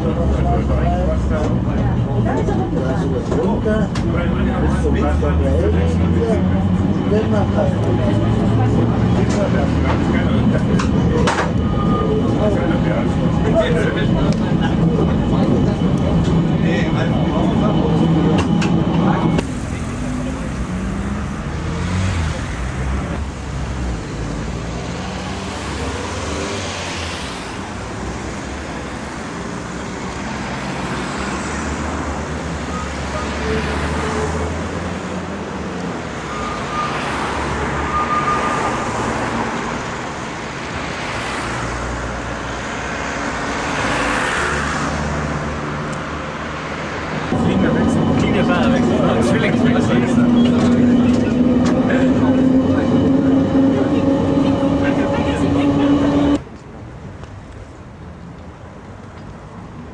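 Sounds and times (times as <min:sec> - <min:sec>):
cars passing: 0:00.0 - 0:59.9
steady traffic hum: 0:00.0 - 0:59.9.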